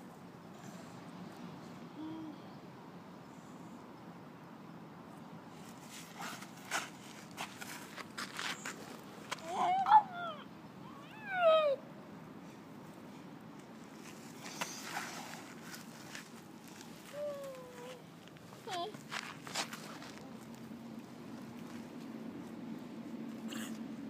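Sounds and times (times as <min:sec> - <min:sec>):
young child crying out: 0:09.4 - 0:11.8, 0:17.1 - 0:18.0.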